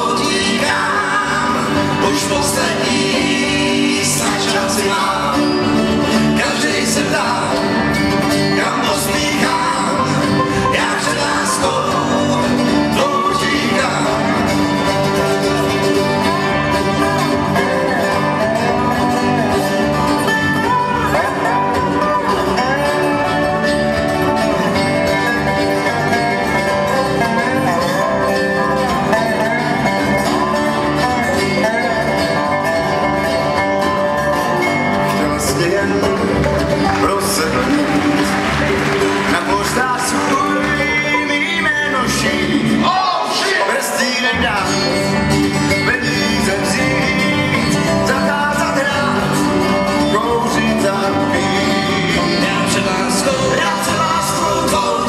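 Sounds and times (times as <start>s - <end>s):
men singing: 0.0s - 24.0s, 24.7s - 55.0s
acoustic guitars: 0.0s - 55.0s
banjo: 0.0s - 55.0s
bluegrass band playing: 0.0s - 55.0s
mandolin: 0.0s - 55.0s.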